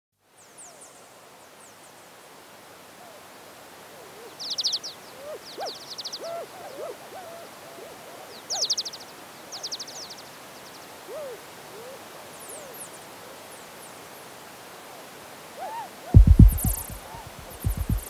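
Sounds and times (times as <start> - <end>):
steady hiss: 16.2 - 18.0.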